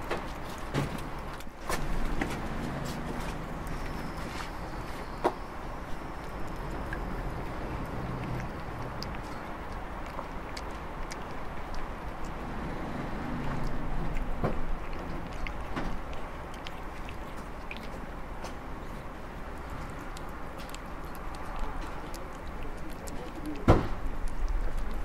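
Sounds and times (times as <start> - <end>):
cat chewing food: 0.0 - 25.0.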